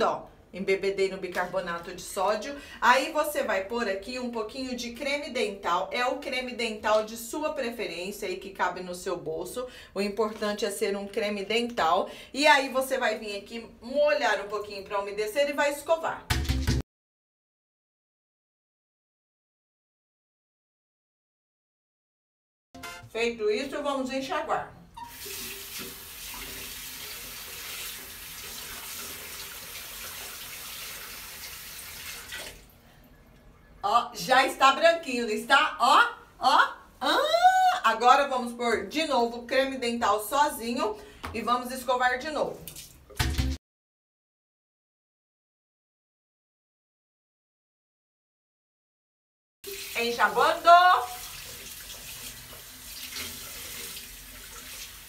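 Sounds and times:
tap running into sink: 25.0 - 30.8
sink tap running: 25.0 - 32.6, 49.7 - 55.0
person rinsing mouth: 25.0 - 32.8, 49.7 - 55.0.

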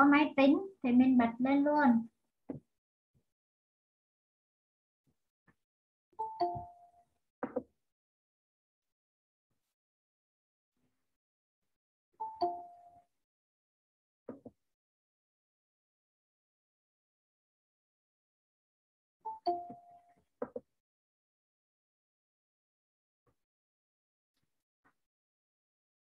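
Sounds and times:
ding-dong notification chime: 6.2 - 7.0, 19.3 - 20.0.

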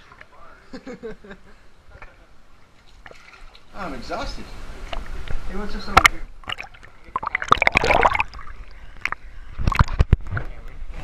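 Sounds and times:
pool water splashing: 2.6 - 9.9.

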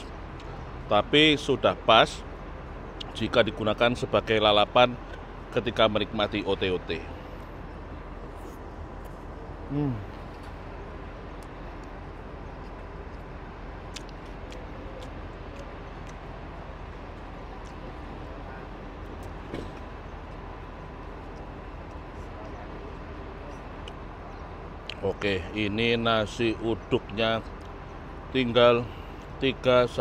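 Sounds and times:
faint distant voices: 12.6 - 27.5.

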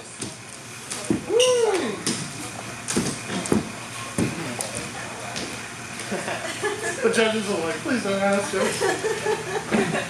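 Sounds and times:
footsteps on wooden floor: 1.0 - 1.3, 2.9 - 5.6
knocks on wooden floor: 3.0 - 4.4.

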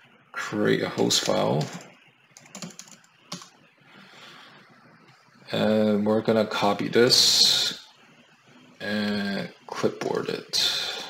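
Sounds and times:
computer keyboard typing: 1.0 - 3.6.

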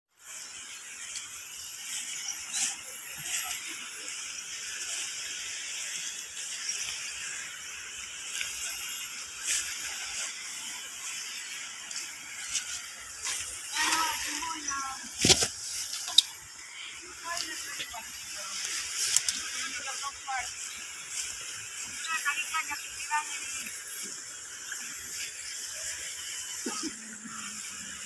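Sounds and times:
insects chorus: 0.2 - 28.0
thin high whine: 0.2 - 28.0
sharp crackles: 0.5 - 24.4.

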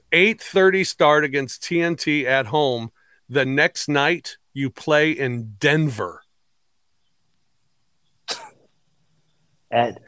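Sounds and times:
man coughing: 8.3 - 8.6.

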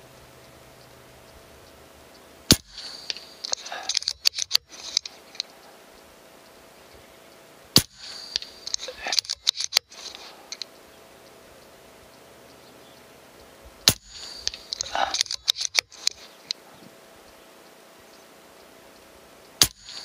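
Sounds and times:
air rifle shot: 2.5 - 4.5, 7.7 - 9.4, 13.8 - 16.3, 19.6 - 20.0
metallic clicks of rifle action: 2.5 - 6.6, 7.8 - 10.8, 13.8 - 16.6.

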